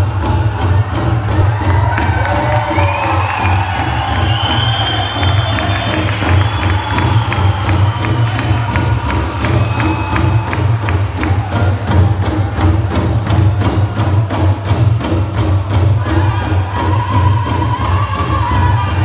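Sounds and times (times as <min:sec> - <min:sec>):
crowd cheering: 0:00.0 - 0:19.0
large drum beating: 0:00.0 - 0:19.0
singers' high voices: 0:16.0 - 0:19.0.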